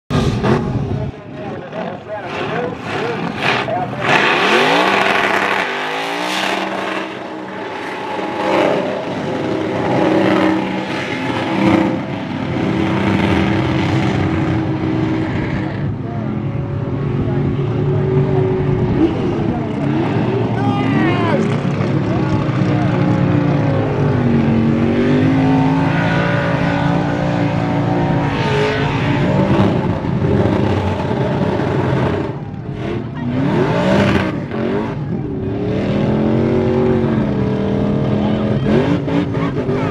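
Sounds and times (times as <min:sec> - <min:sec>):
car engine revving hard: 0:01.7 - 0:16.0, 0:17.2 - 0:39.9.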